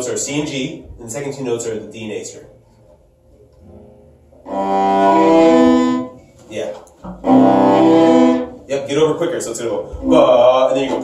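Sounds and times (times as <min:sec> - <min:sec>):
cello bowed double stops: 0:04.4 - 0:06.2, 0:07.1 - 0:08.6.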